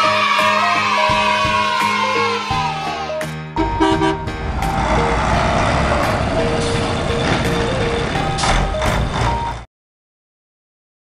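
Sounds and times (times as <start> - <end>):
music: 0.0 - 9.7
truck horn toots: 3.6 - 7.0
truck engine running: 3.6 - 9.7.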